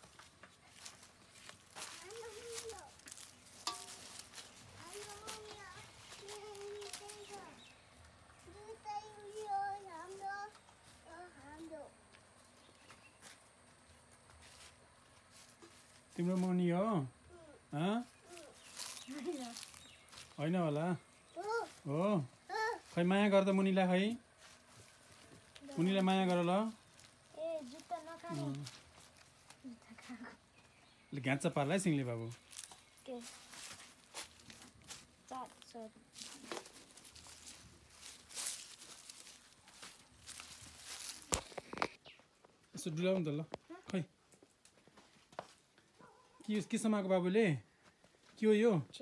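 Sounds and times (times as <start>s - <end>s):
faint rustling and crinkling: 0.0s - 20.4s, 21.0s - 31.1s, 31.8s - 46.4s
child saying yes: 1.9s - 3.0s, 4.8s - 7.6s, 8.4s - 11.9s, 21.4s - 21.8s, 22.5s - 22.9s, 27.4s - 28.7s, 33.0s - 33.4s, 35.3s - 35.9s.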